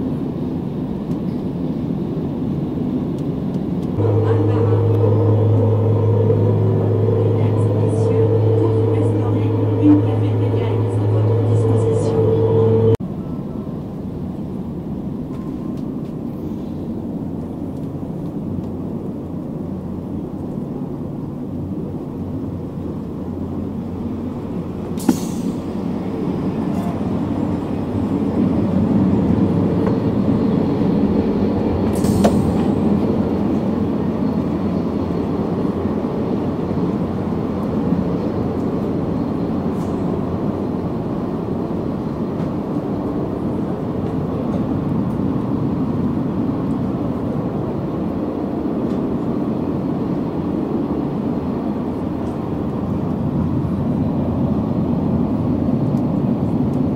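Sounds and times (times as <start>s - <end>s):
train rumbling at speed: 0.0s - 56.9s.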